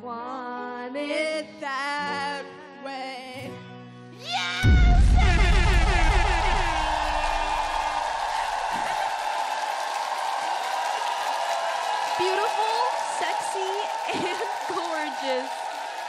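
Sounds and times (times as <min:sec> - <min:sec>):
deep bass note: 0:04.6 - 0:07.8
audience noise: 0:04.6 - 0:16.0.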